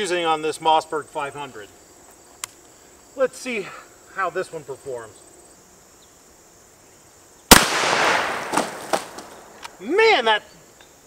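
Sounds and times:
shotgun shot: 0:07.5 - 0:09.6.

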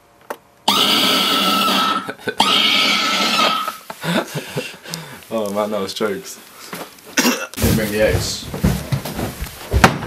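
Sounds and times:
loud harsh scream: 0:00.7 - 0:03.8.

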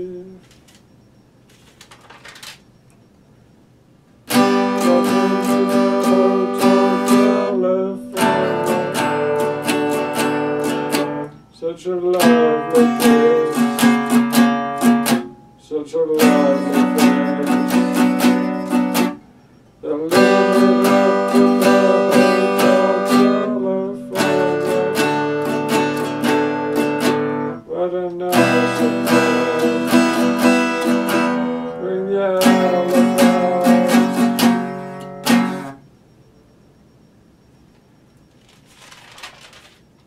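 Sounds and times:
acoustic guitar strumming: 0:04.2 - 0:36.1.

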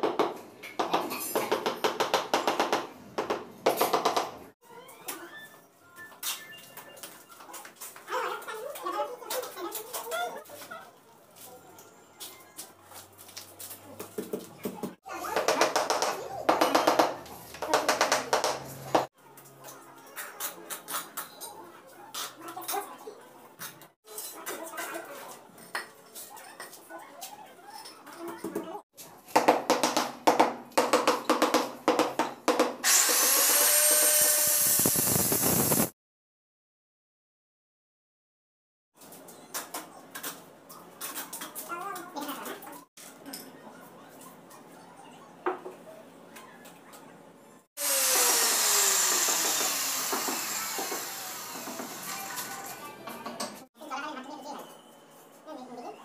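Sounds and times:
motor spinning down whirring: 0:32.9 - 0:35.9, 0:47.8 - 0:52.5.

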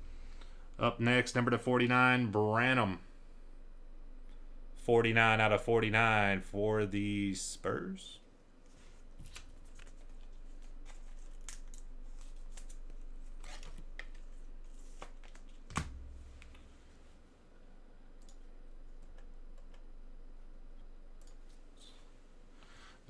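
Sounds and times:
cards and packaging rustling: 0:09.2 - 0:15.7.

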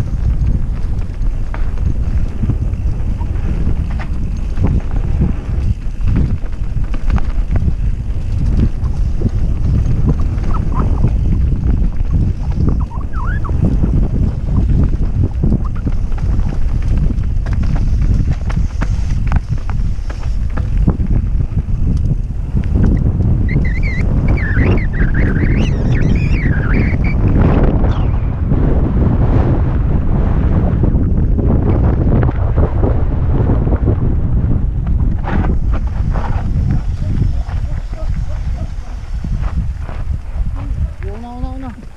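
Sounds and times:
bike knocks and rattles: 0:00.0 - 0:13.0, 0:13.6 - 0:26.0
wind buffeting microphone: 0:00.0 - 0:41.9
high-pitched squeal: 0:23.5 - 0:27.2.

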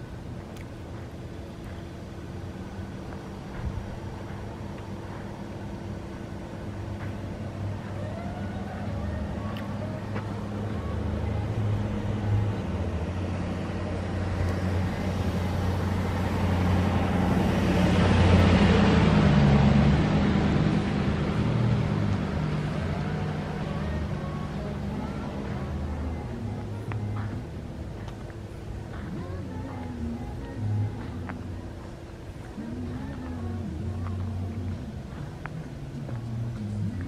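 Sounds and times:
car driving past: 0:01.3 - 0:37.0.

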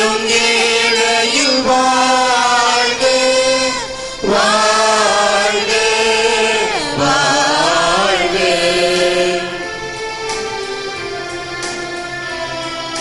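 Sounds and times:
hymn singing with accompaniment: 0:00.0 - 0:13.0.

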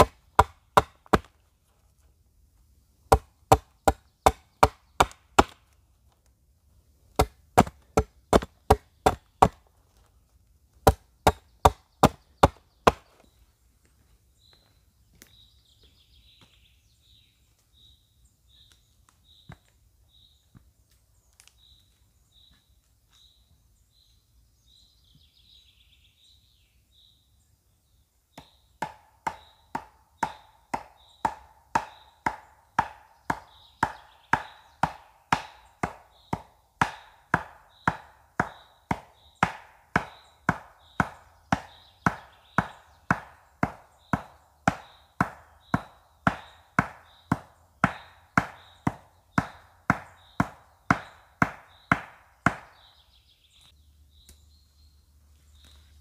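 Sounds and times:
axe chopping tree: 0:00.0 - 0:01.4, 0:03.1 - 0:05.8, 0:07.1 - 0:09.7, 0:10.8 - 0:13.1, 0:28.3 - 0:53.0.

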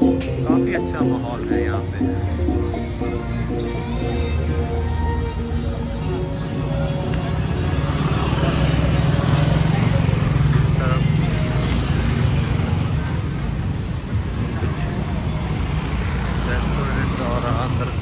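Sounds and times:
people talking: 0:00.0 - 0:02.5, 0:16.4 - 0:18.0
scooters and cars passing: 0:00.0 - 0:18.0.

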